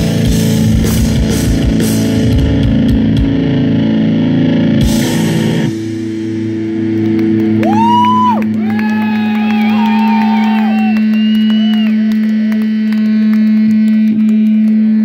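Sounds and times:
electric guitar amp feedback: 0:00.0 - 0:15.0.

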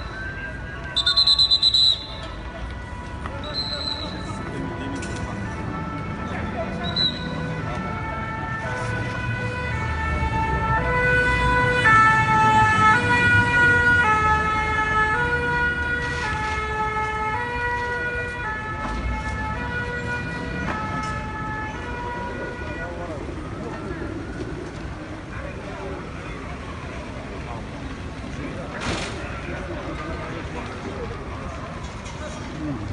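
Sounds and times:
fire engine two-tone siren: 0:00.0 - 0:26.7.

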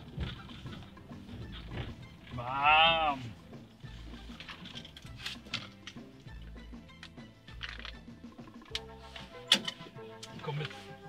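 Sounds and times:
van cab rumble: 0:00.0 - 0:06.2.

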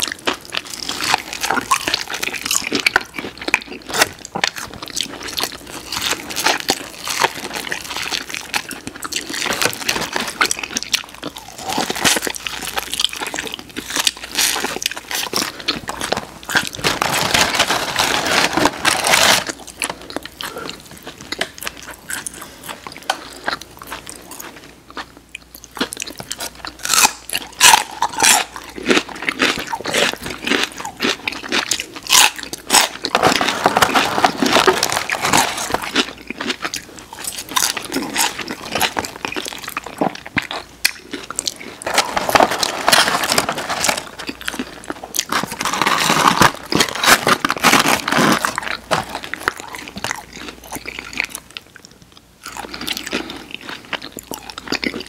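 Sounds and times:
people chewing and crunching food: 0:00.0 - 0:55.0.

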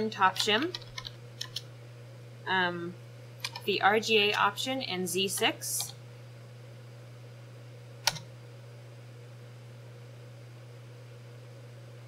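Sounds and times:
low electrical hum: 0:00.0 - 0:12.0
computer keyboard keystroke: 0:00.3 - 0:01.6, 0:03.4 - 0:03.6, 0:08.0 - 0:08.3.

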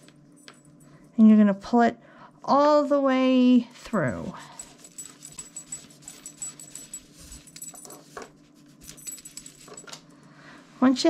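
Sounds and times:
metal hardware clinking: 0:04.0 - 0:10.1
cord rustling: 0:04.6 - 0:10.0.

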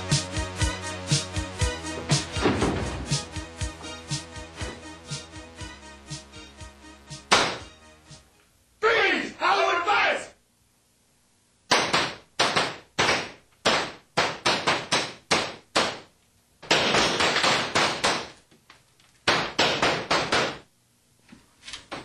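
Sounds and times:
loud sharp bangs: 0:07.3 - 0:07.7.

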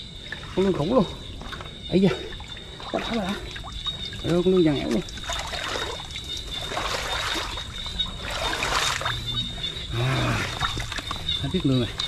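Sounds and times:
water trickling and splashing: 0:00.0 - 0:12.0.

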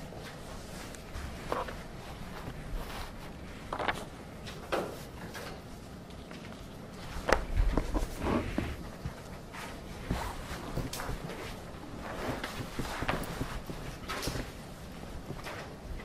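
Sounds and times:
paper rustling: 0:00.1 - 0:05.6.

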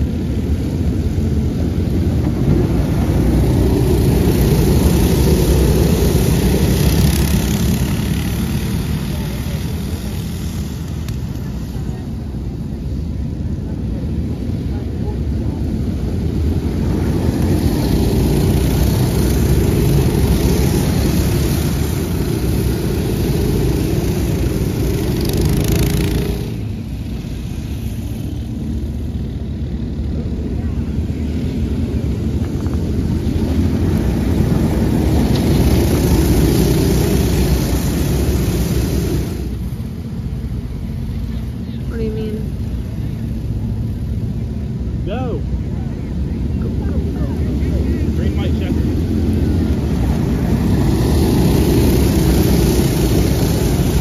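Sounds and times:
go-kart engines racing past: 0:00.0 - 0:54.0.

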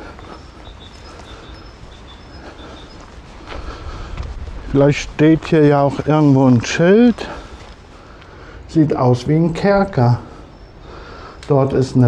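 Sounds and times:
wind rumbling on microphone: 0:00.0 - 0:08.0
footsteps on gravel: 0:00.0 - 0:08.4.

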